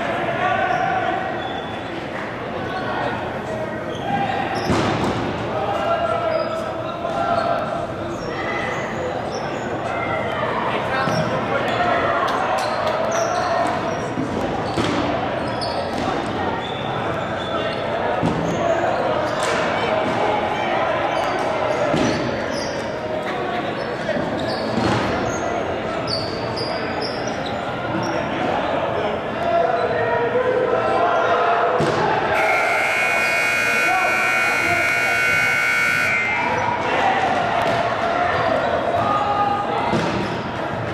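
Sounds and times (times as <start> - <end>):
players shouting in gym: 30.6 - 40.0
buzzer: 32.4 - 36.6.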